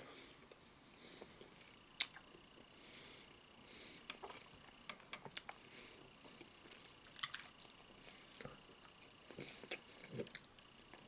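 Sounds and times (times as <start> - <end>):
chewing crispy fried chicken: 6.2 - 11.0.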